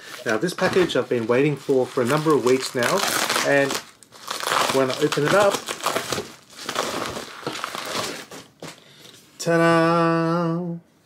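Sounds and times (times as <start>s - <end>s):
mailing bag crinkling: 0.1s - 8.7s.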